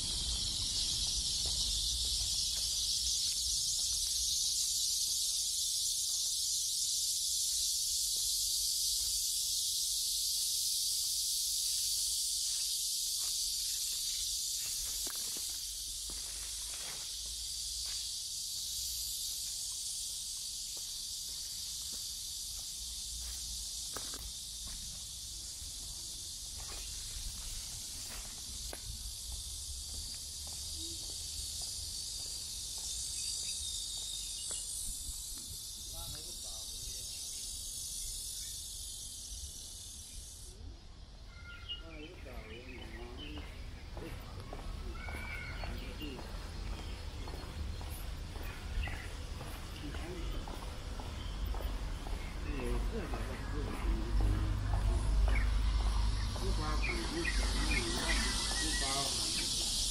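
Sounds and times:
cicadas buzzing: 0.0s - 59.9s.

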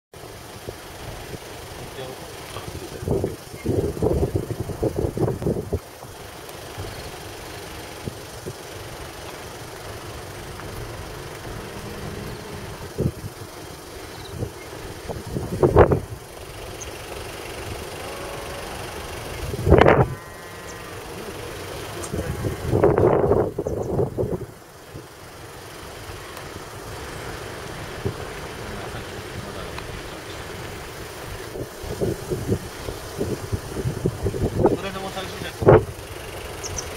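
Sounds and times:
moving vehicle running noise: 0.1s - 36.9s
people's voices: 20.8s - 23.2s, 28.1s - 31.4s.

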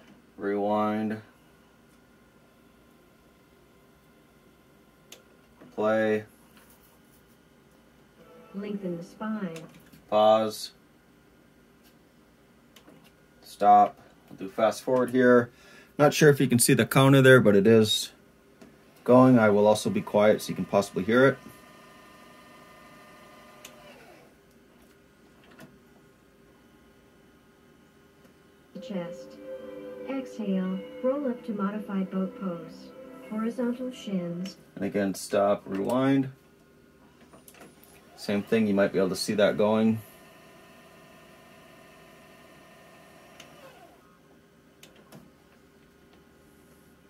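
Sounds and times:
tape deck motor whirring: 19.7s - 24.3s, 37.9s - 39.2s, 39.8s - 44.0s.

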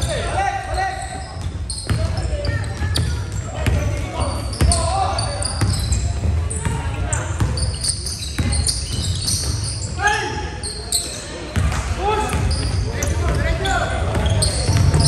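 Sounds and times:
sneaker squeaks: 0.0s - 15.0s.

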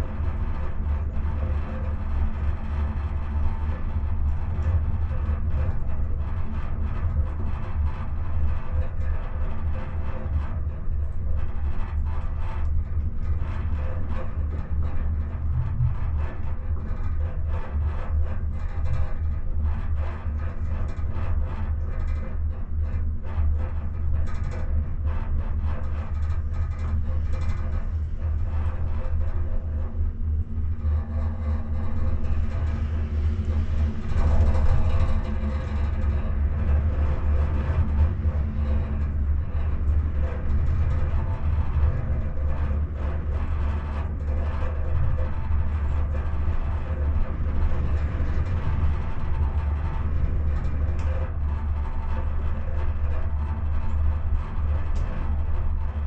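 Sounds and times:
gondola cabin rumbling: 0.0s - 56.0s.

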